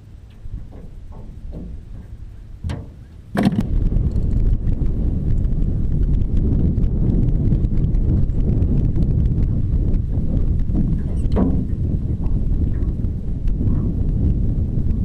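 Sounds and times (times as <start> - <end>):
wind buffeting microphone: 0.0 - 15.0
light clicks and knocks: 0.3 - 3.7.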